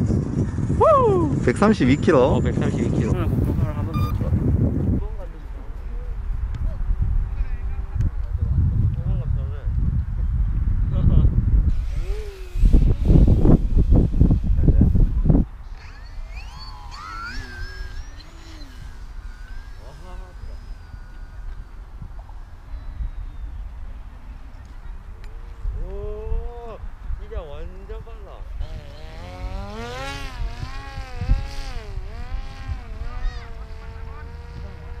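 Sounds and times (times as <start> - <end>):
gusty wind thump: 0.0 - 5.4, 6.1 - 16.5
wind rumble on microphone: 0.0 - 35.0
model plane motor whine: 11.7 - 23.5, 28.6 - 35.0.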